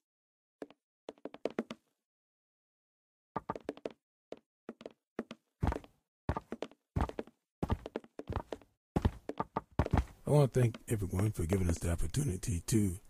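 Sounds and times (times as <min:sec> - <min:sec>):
quick footsteps: 0:03.4 - 0:12.0.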